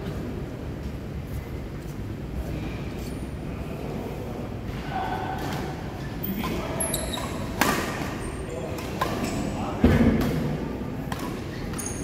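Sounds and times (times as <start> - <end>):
racket hitting shuttlecock: 7.4 - 8.2, 8.8 - 12.0.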